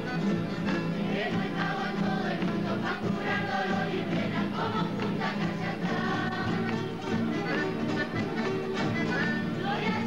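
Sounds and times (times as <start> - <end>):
acoustic guitars strummed: 0.0 - 10.0
children singing in chorus: 1.1 - 6.8.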